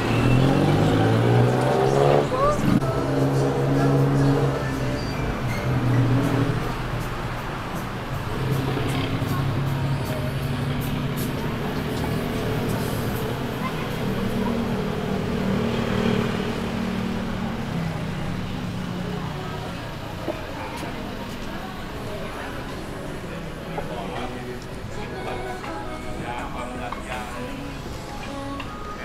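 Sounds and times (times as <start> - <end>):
music: 0.0 - 14.4, 23.4 - 29.0
road traffic: 0.0 - 29.0
voices: 0.0 - 29.0.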